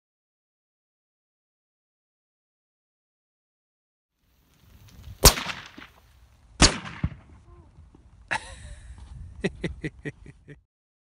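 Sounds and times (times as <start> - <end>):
rifle shot: 5.2 - 6.0, 6.6 - 7.4.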